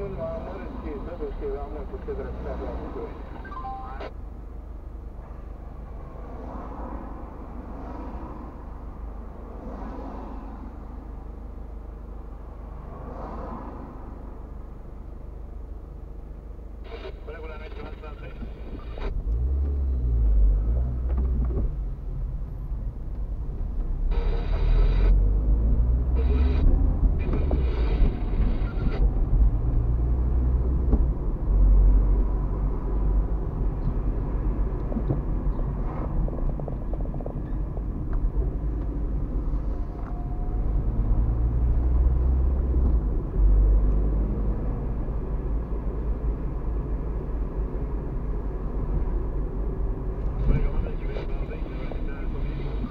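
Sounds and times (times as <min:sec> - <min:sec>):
car engine and road rumble: 0:00.0 - 0:52.9.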